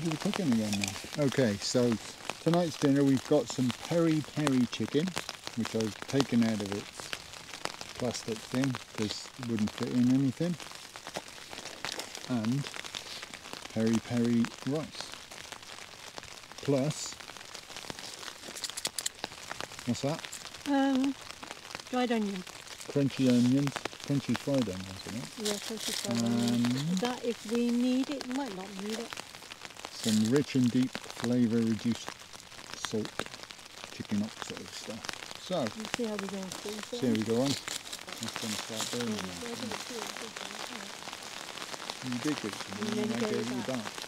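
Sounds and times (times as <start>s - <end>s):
chicken sizzling in a pot: 0.0s - 26.7s
plastic packet crinkling: 17.8s - 19.6s, 36.4s - 39.9s.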